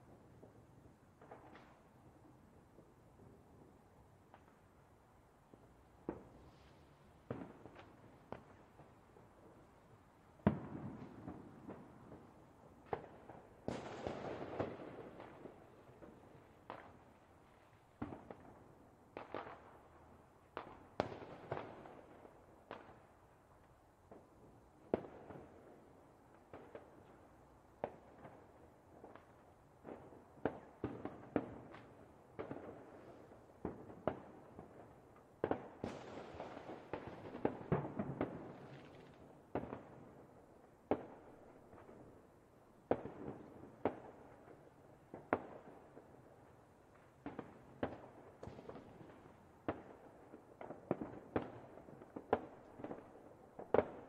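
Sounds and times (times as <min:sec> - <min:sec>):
fireworks cracking and banging: 0:27.8 - 0:40.2.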